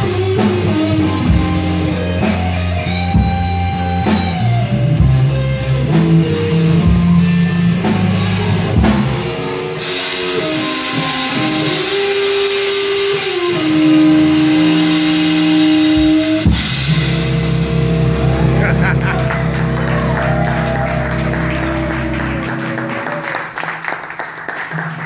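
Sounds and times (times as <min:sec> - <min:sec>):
electric guitar chords: 0:00.0 - 0:25.0
electric bass note: 0:13.6 - 0:23.1.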